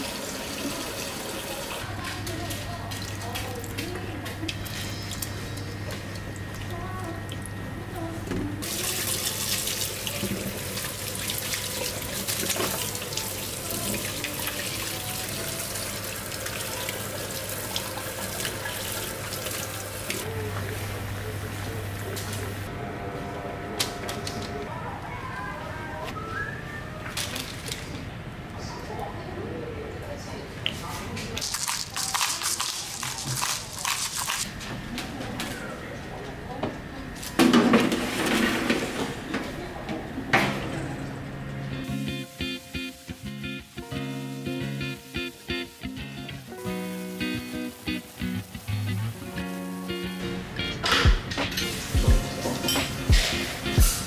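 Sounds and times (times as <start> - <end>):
parchment paper rustling: 31.4 - 34.5.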